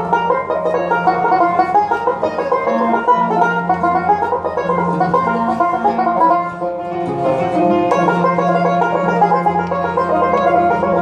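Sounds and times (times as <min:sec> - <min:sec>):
banjo picking quick melody: 0:00.0 - 0:11.0
long held low notes: 0:00.0 - 0:11.0
violin: 0:00.0 - 0:11.0.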